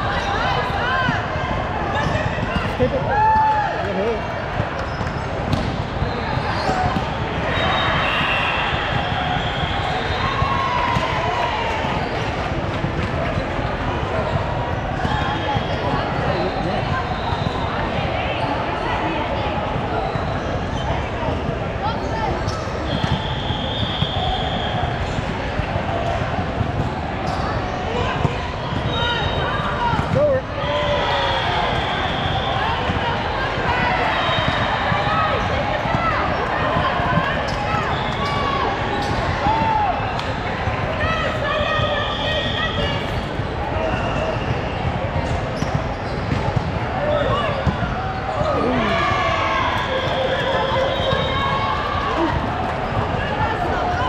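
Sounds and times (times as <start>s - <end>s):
voices in a gym: 0.0s - 54.0s.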